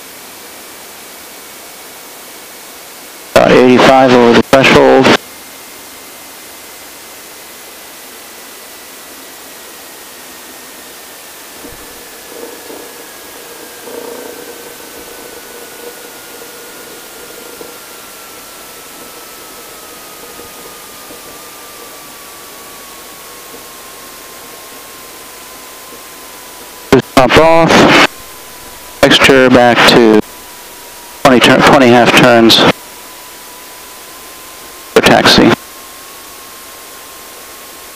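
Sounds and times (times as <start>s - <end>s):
faint whine falling in pitch: 2.6s - 37.9s
steady hiss: 10.2s - 37.9s
faint irregular bumps: 11.6s - 22.5s.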